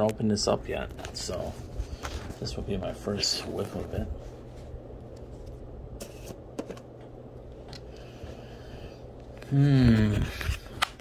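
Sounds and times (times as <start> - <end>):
low steady hum: 0.0 - 11.0
handling and scraping sounds: 0.8 - 6.9.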